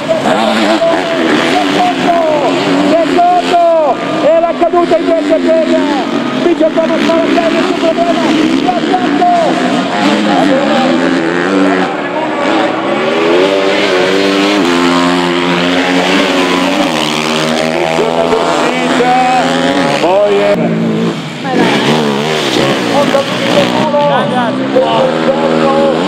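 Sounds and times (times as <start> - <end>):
racing motorcycle engines revving: 0.0 - 26.0.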